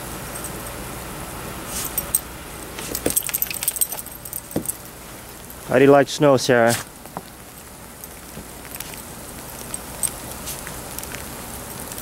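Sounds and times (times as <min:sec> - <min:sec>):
small metal pieces jingling: 0:02.8 - 0:04.9.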